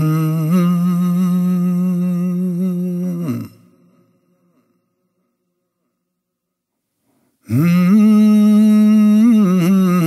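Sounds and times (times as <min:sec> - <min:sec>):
man humming a held note: 0:00.0 - 0:04.0, 0:07.4 - 0:10.0.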